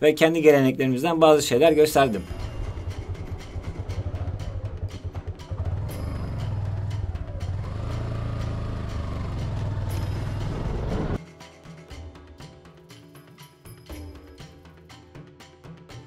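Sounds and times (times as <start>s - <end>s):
background music: 0.0s - 16.0s
vehicle engine rumbling: 2.1s - 11.2s.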